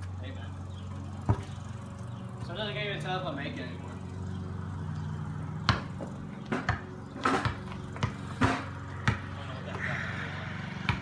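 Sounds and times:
basketball bouncing on concrete: 0:01.1 - 0:01.6, 0:05.5 - 0:09.5, 0:10.8 - 0:11.0.

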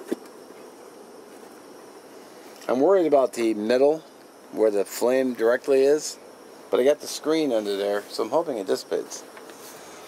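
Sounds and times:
gas burner hum: 0:00.0 - 0:10.0.

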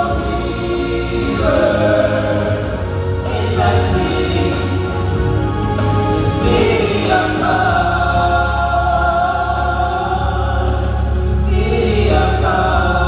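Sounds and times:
gospel singers through microphones: 0:00.0 - 0:13.0.

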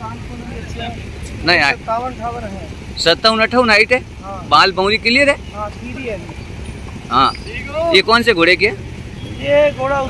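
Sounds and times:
voices talking: 0:00.0 - 0:10.0.

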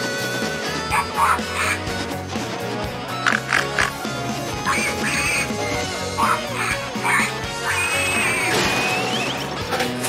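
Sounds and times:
cartoon background music: 0:00.0 - 0:10.0
cartoon pig squeals: 0:00.9 - 0:01.9, 0:03.3 - 0:04.0, 0:04.6 - 0:08.7.

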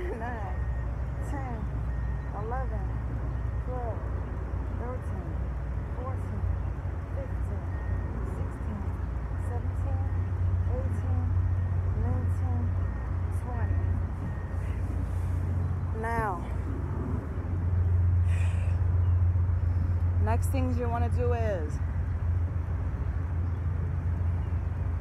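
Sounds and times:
low rumble: 0:00.0 - 0:25.0.

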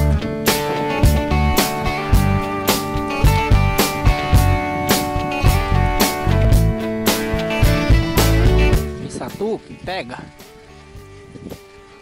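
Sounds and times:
background guitar music: 0:00.0 - 0:12.0.

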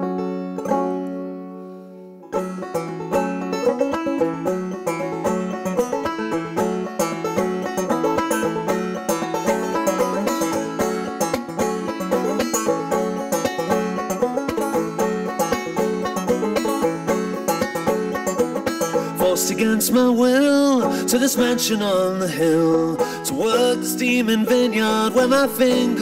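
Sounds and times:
banjo chord ringing: 0:00.0 - 0:26.0
fast picked banjo playing: 0:00.0 - 0:26.0.

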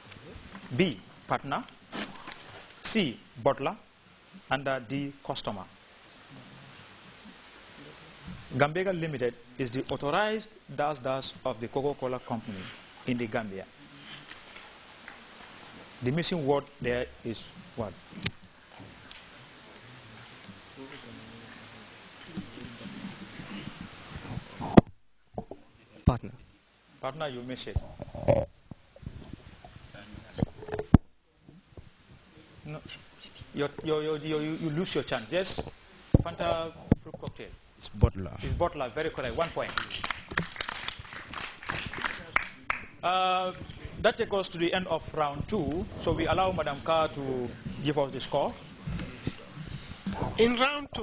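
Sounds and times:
low hiss: 0:00.0 - 0:51.0
sparse audience clapping: 0:39.4 - 0:43.0.

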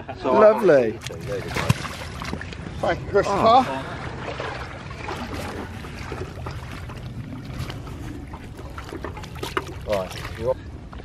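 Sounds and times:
water trickling and clicking: 0:05.2 - 0:11.0.

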